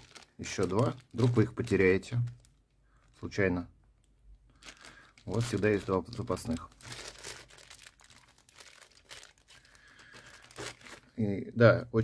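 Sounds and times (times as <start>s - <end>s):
plastic bag crinkling: 0.0s - 3.4s, 4.4s - 11.2s.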